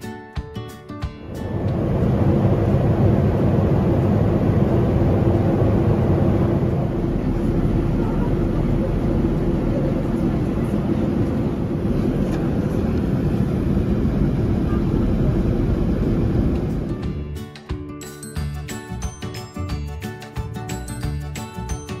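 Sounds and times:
airliner engines and airflow rush: 0:01.0 - 0:17.3
faint steady hum: 0:01.2 - 0:17.0.

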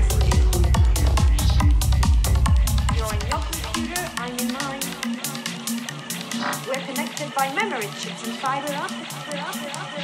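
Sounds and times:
psytrance music: 0:00.0 - 0:10.0.

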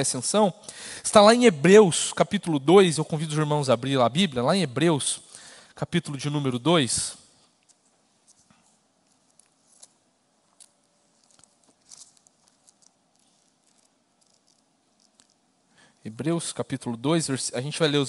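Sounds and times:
pages rustling: 0:07.7 - 0:15.4.

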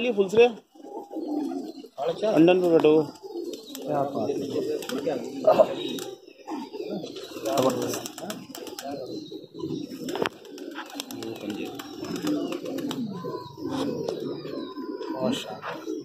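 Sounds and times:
pigeons cooing: 0:00.0 - 0:16.0.

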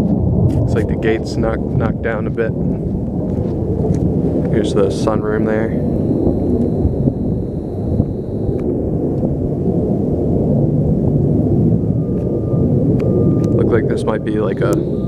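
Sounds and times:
steady low rumble: 0:00.0 - 0:15.0
thin high whine: 0:04.6 - 0:08.7, 0:12.2 - 0:15.0
faint mid-pitched tone: 0:05.0 - 0:08.6, 0:13.1 - 0:15.0.

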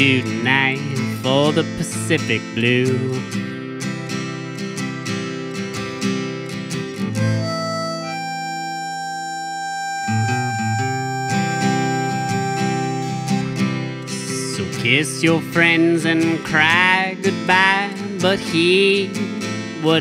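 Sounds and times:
strummed acoustic guitar: 0:00.0 - 0:20.0
harmonica held notes: 0:07.0 - 0:14.7.

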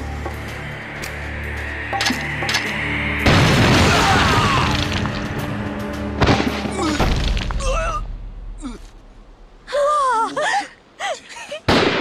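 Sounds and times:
grenade explosion: 0:03.2 - 0:04.8.

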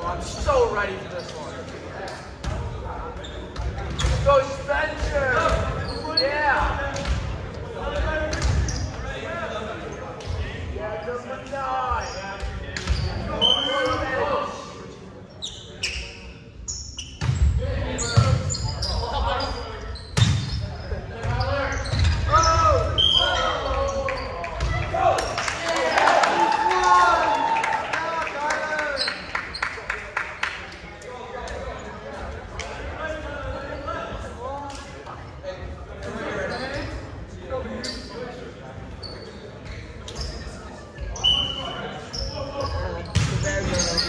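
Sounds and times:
players calling out and chatting: 0:00.0 - 0:44.0
volleyball slaps and bounces: 0:43.1 - 0:43.8.

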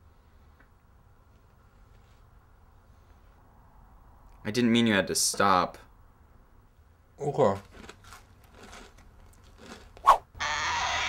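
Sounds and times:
person munching crisp food: 0:07.6 - 0:10.3.

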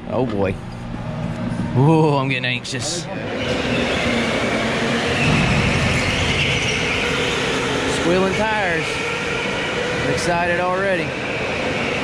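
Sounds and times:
go-kart engines: 0:00.0 - 0:12.0
tires squealing: 0:03.2 - 0:12.0.

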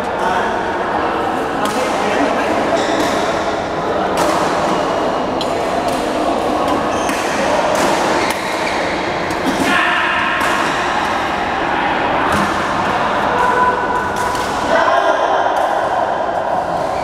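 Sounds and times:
echoing distant voices: 0:00.0 - 0:17.0
racket strikes on shuttlecocks: 0:09.3 - 0:11.2.

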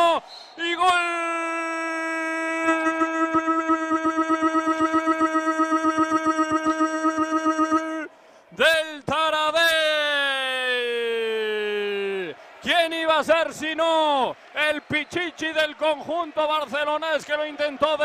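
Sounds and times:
man shouting goal call: 0:00.0 - 0:18.0.

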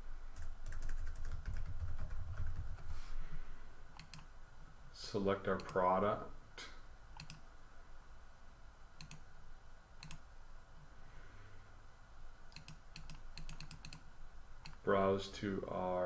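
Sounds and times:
computer mouse clicks: 0:04.0 - 0:04.3, 0:07.2 - 0:07.4, 0:09.0 - 0:09.3, 0:10.0 - 0:10.3, 0:12.5 - 0:14.8.

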